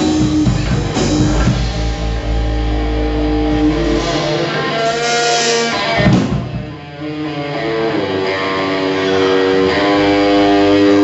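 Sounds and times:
low bass note: 0:00.0 - 0:06.5
distorted electric guitar chord: 0:00.0 - 0:11.0.

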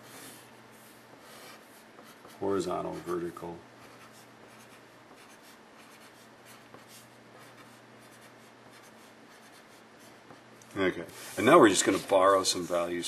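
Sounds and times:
pencil scratching on paper: 0:00.0 - 0:10.4.

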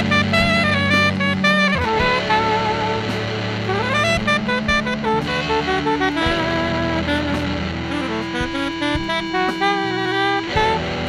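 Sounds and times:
electric guitar: 0:00.0 - 0:11.0
held bass note: 0:00.0 - 0:11.0
saxophone: 0:00.0 - 0:11.0.

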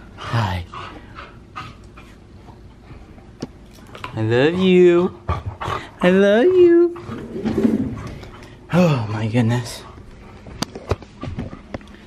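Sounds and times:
dog panting: 0:00.0 - 0:03.2, 0:03.8 - 0:07.3, 0:09.3 - 0:12.0.

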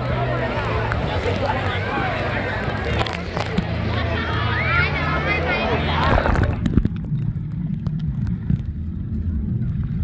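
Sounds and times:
muffled underwater river rumble: 0:05.3 - 0:10.0.

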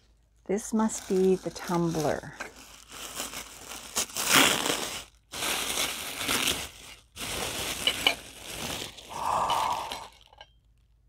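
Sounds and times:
tissue paper crinkling: 0:00.6 - 0:10.3.

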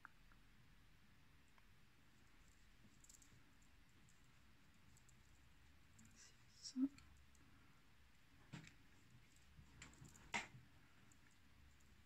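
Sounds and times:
crochet hook clicking and rustling: 0:08.4 - 0:12.0.

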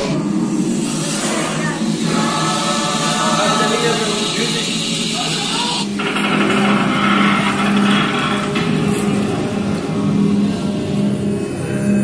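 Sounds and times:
loud motor hum: 0:00.0 - 0:12.0.

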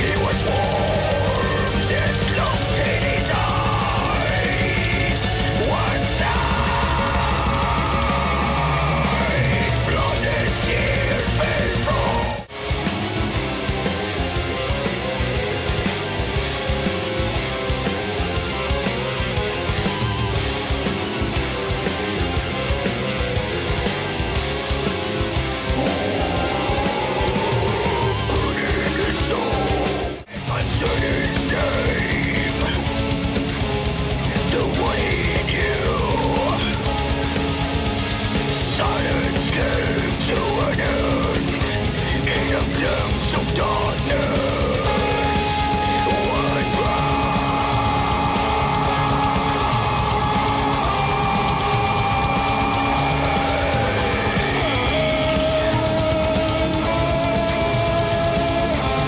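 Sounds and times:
doom metal music: 0:00.0 - 0:59.0
heavy electric guitars: 0:00.0 - 0:59.0.

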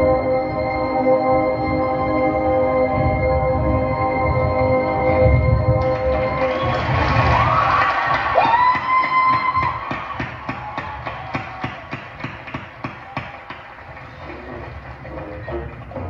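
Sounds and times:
stadium crowd cheering: 0:05.8 - 0:16.0
steady tapping beat: 0:08.0 - 0:16.0.

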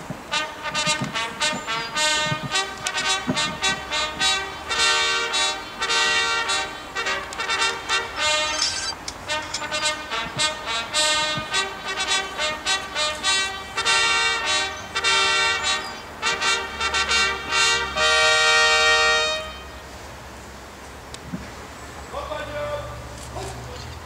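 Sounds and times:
military brass band playing: 0:00.0 - 0:20.0.

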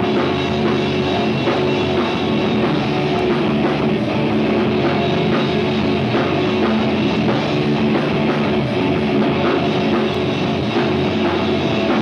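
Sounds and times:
punk rock band playing: 0:00.0 - 0:12.0.

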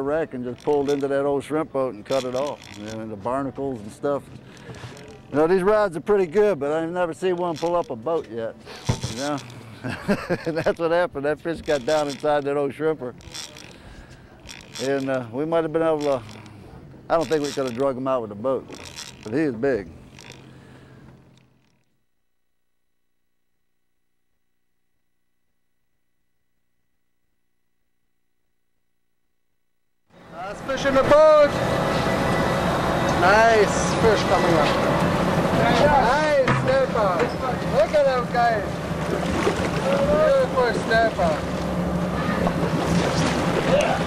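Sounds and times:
boat engine idling: 0:00.0 - 0:21.9, 0:30.1 - 0:44.0
wind: 0:00.0 - 0:21.9, 0:30.1 - 0:44.0
water noise: 0:30.2 - 0:44.0.

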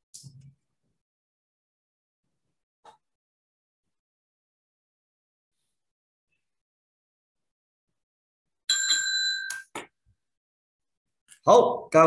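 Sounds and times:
timekeeper's bell ringing: 0:08.7 - 0:09.7.

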